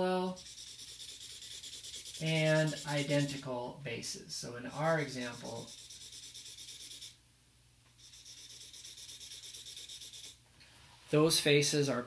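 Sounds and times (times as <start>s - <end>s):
marker scratching on paper: 0.3s - 3.4s, 4.8s - 7.2s, 8.0s - 10.4s.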